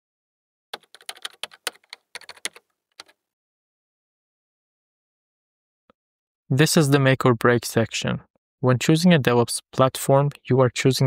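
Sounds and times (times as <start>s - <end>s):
keyboard key clicks: 0.8s - 3.2s.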